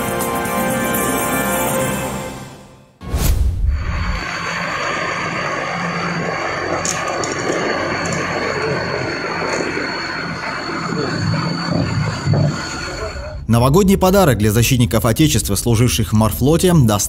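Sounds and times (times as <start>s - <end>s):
loader engine running: 3.9s - 13.4s.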